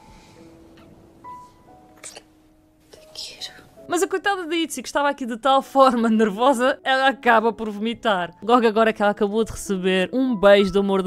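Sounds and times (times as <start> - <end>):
quiet sustained music: 0.0 - 11.0
women whispering and breathing: 2.9 - 3.8.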